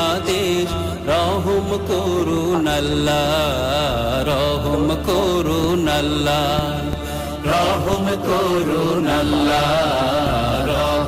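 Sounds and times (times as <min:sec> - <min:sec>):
person chanting: 0:00.0 - 0:11.0
steady low drone: 0:00.0 - 0:11.0.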